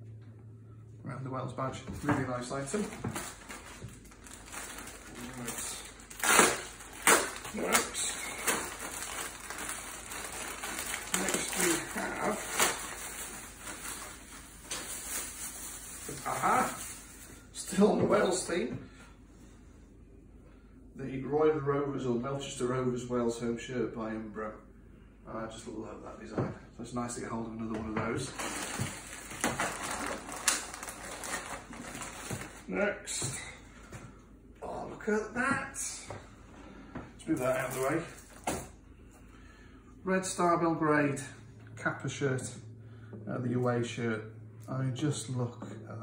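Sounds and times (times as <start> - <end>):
sharp plastic crackles: 2.0 - 17.3, 28.2 - 32.7
plastic bag crinkling: 2.1 - 17.9, 28.2 - 32.7, 37.2 - 38.7.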